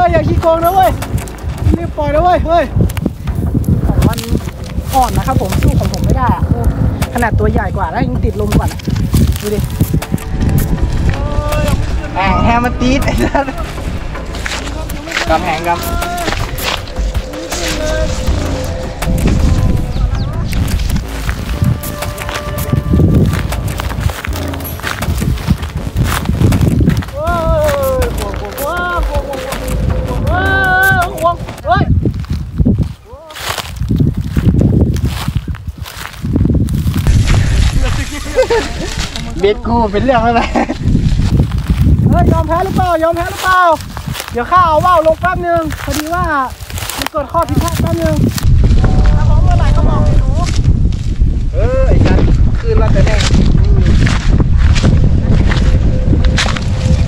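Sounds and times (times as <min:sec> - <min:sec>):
wind rumbling on microphone: 0:00.0 - 0:57.0.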